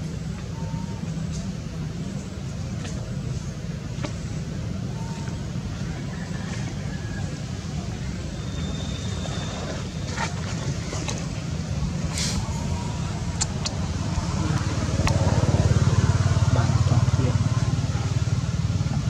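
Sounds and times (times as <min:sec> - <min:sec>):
low outdoor rumble: 0:00.0 - 0:19.0.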